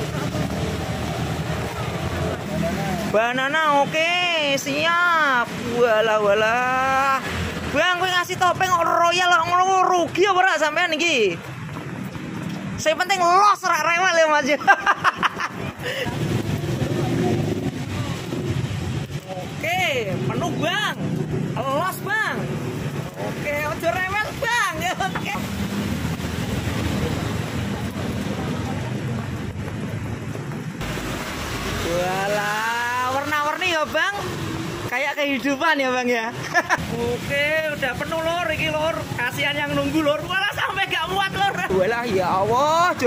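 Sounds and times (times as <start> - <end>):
vehicle engine rumble: 0.0 - 3.2, 15.4 - 32.2
road traffic rumble: 0.0 - 43.0.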